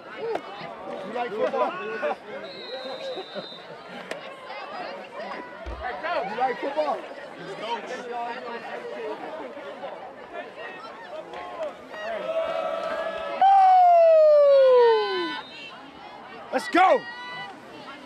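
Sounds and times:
chatter of voices: 0.0s - 18.0s.

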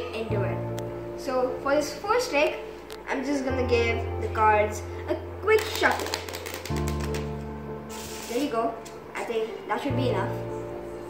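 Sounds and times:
background music with held notes: 0.0s - 11.0s
playing cards being shuffled: 5.6s - 9.0s.

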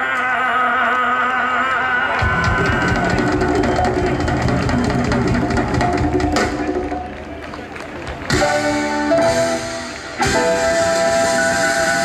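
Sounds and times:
bass: 2.0s - 12.0s
drums: 2.1s - 12.0s
congas and percussion clattering: 2.2s - 10.4s.

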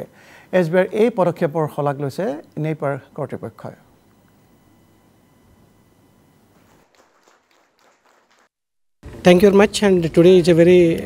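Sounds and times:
faint scattered applause: 6.6s - 8.6s.

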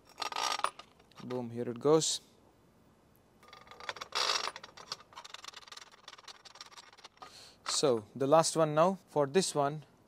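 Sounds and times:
metal screws clicking and tapping: 3.4s - 7.9s.

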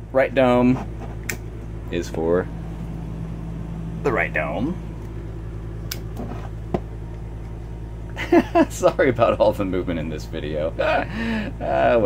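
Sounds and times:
steady low hum: 0.0s - 12.0s
rocker switches clicking: 1.2s - 1.4s, 5.8s - 6.2s.

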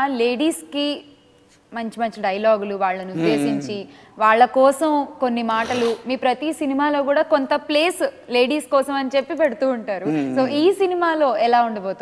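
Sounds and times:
person talking: 3.1s - 3.9s, 10.0s - 10.7s.

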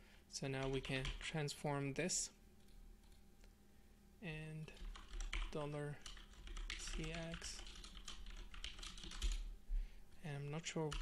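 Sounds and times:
typing on computer keyboard: 0.6s - 1.4s, 4.8s - 9.5s.

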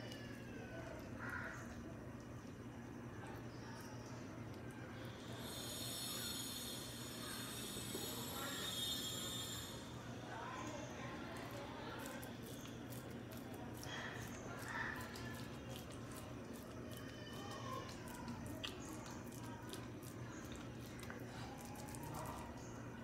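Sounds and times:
thin high-pitched whine: 0.0s - 13.0s
faint distant voices: 0.0s - 23.0s.

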